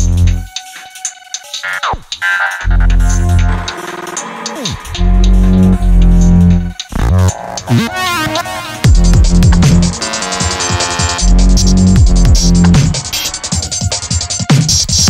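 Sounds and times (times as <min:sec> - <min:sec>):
heavy sub-bass notes: 0:00.0 - 0:00.6, 0:02.6 - 0:13.3
synth stabs: 0:01.4 - 0:13.8
falling synth sweep: 0:02.6 - 0:11.5
drum hits: 0:08.8 - 0:13.9.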